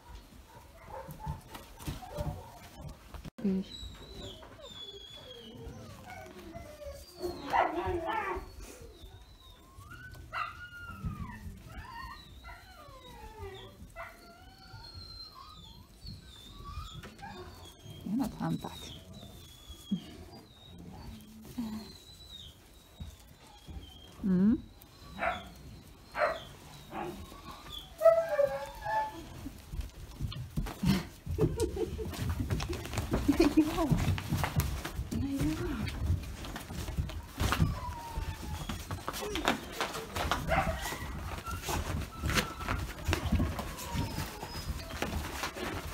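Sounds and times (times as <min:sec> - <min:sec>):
dogs whining: 0:00.0 - 0:45.9.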